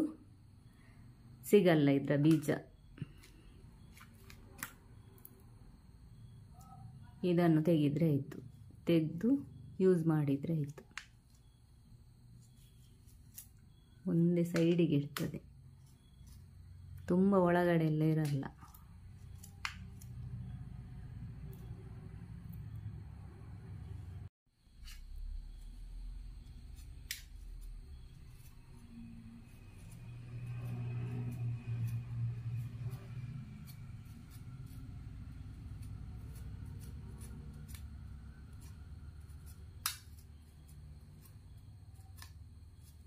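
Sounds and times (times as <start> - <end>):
knife cutting watermelon: 26.4 - 43.0.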